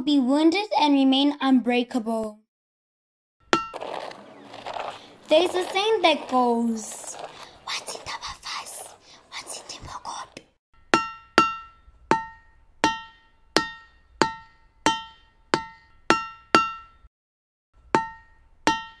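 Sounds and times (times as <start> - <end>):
person whispering: 5.2 - 10.5.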